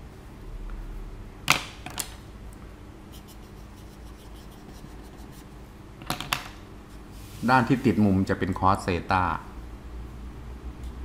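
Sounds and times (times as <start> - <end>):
marker scratching on paper: 3.1 - 5.6.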